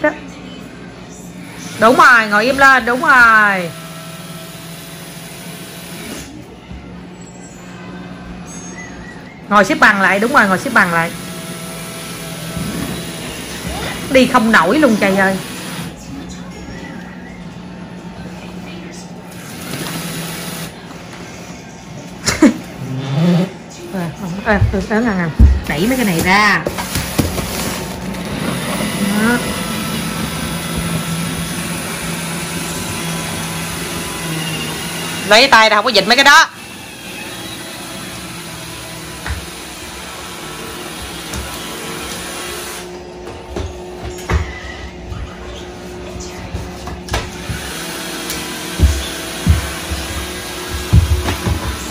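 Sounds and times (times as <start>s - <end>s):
robot vacuum motor straining: 25.8s - 35.3s.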